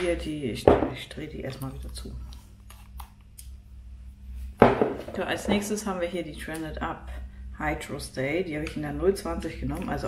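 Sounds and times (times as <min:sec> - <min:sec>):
woman speaking: 0:00.0 - 0:02.3, 0:05.0 - 0:10.0.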